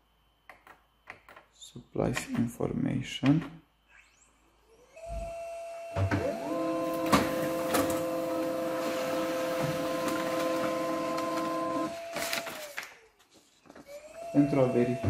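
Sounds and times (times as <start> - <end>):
printer motor whine: 3.8 - 13.1, 13.7 - 15.0
printer thump: 7.0 - 8.1.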